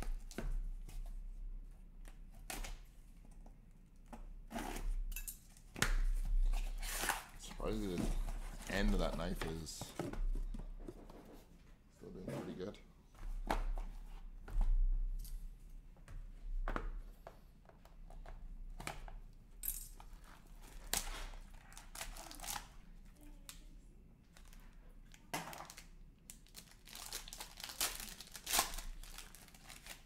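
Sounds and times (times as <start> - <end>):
packing tape slit and torn: 20.8 - 22.7, 25.1 - 30.0.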